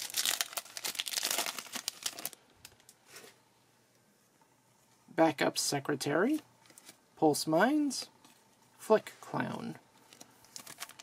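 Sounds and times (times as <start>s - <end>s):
foil wrapper crinkling and tearing: 0.0s - 3.0s, 10.1s - 11.0s.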